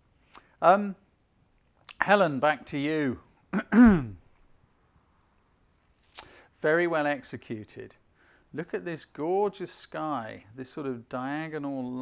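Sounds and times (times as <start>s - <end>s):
man clearing throat: 3.5s - 4.2s.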